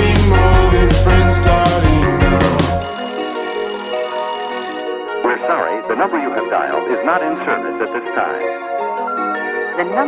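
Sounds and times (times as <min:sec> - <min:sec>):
pop song: 0:00.0 - 0:03.3
electronic telephone-style tone: 0:02.8 - 0:05.3.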